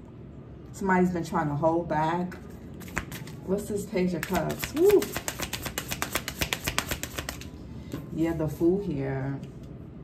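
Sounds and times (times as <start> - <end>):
playing cards being shuffled: 2.8 - 3.4, 4.2 - 7.5.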